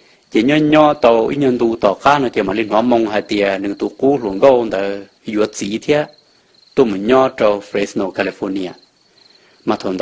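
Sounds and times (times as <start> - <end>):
crickets trilling: 0.0 - 10.0
person speaking: 0.3 - 8.9, 9.6 - 10.0.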